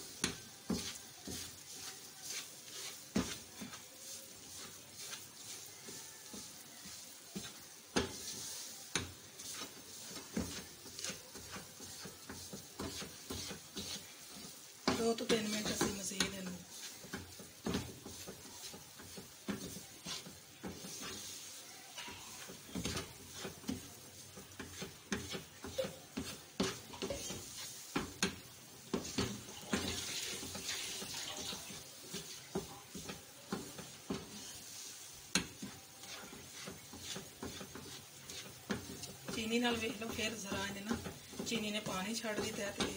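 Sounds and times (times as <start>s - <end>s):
spatula scraping frying pan: 0.0s - 42.9s.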